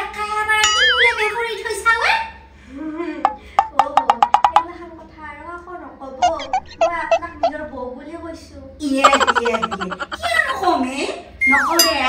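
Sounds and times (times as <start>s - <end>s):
person making comic sound: 6.2s - 7.6s, 9.0s - 10.3s.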